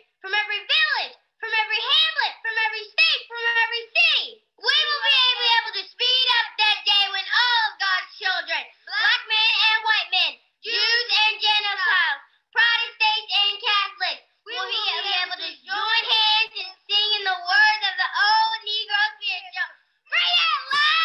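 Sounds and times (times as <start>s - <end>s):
children speaking in unison: 0.0s - 21.0s.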